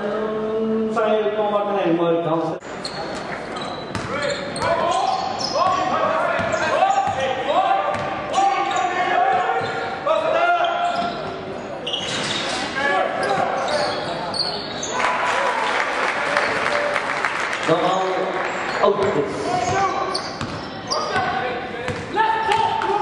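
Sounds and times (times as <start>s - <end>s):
crowd noise: 0.0s - 23.0s.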